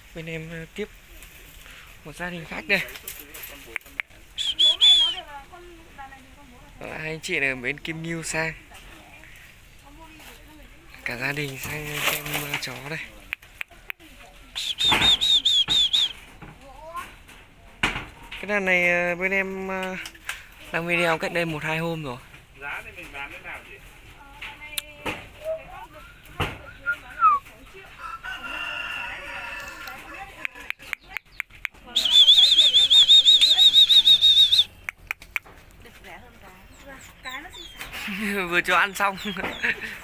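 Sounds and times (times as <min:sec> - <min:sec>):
bird chirping: 0:14.5 - 0:16.2, 0:30.5 - 0:35.6, 0:36.4 - 0:40.0
sharp clicks: 0:29.8 - 0:31.8, 0:34.8 - 0:35.6.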